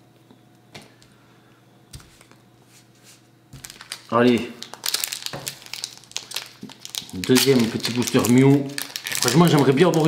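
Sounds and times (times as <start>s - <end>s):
foil wrapper crinkling: 3.6s - 10.0s.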